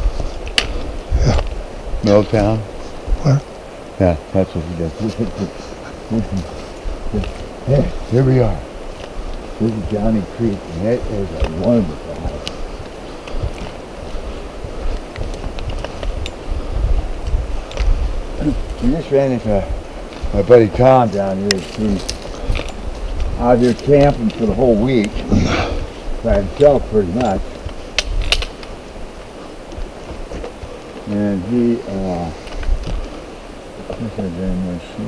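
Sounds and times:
footsteps on trail: 0.0 - 35.0
steady hiss: 0.0 - 35.0
wind rumbling on microphone: 0.0 - 35.0
gear rustling: 4.8 - 34.2.

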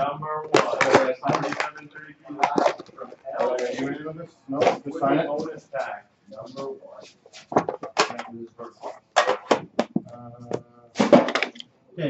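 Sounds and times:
box set down: 11.0 - 11.6.

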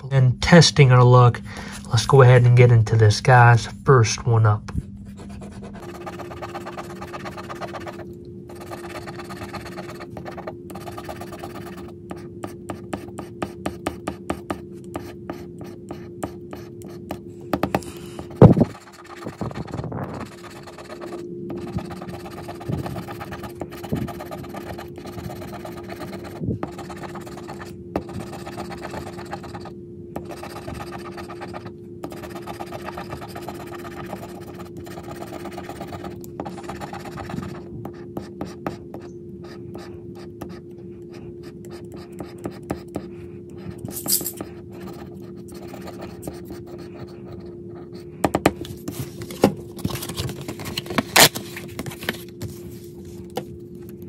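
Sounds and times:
steady low hum: 0.0 - 54.0
plastic tool scraping scratch ticket: 5.3 - 37.6, 43.8 - 47.2.

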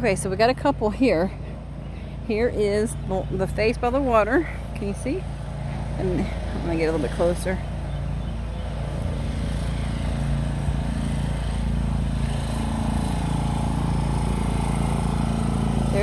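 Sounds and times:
engine droning: 0.0 - 16.0.

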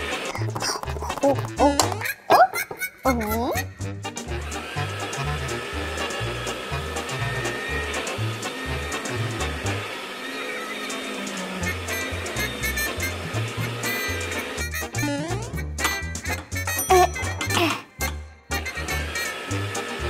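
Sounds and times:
toy vacuum cleaner whirring: 0.0 - 2.0, 4.3 - 15.0, 18.5 - 20.0.

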